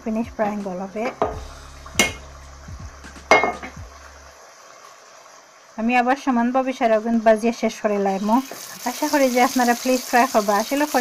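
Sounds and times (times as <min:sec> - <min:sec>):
steady low hum: 0:00.0 - 0:04.4
frying pan clinks: 0:02.0 - 0:02.2, 0:03.3 - 0:03.8.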